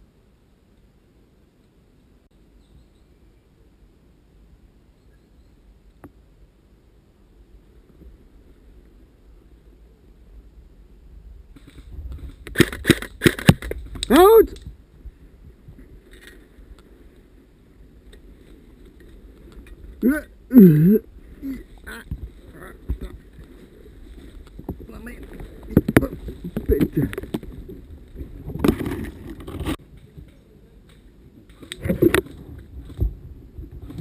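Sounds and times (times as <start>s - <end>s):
person shouting: 14.1s - 14.6s.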